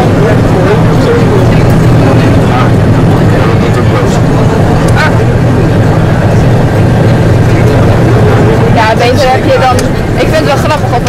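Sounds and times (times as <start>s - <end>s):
coach engine and road rumble: 0.0s - 11.0s.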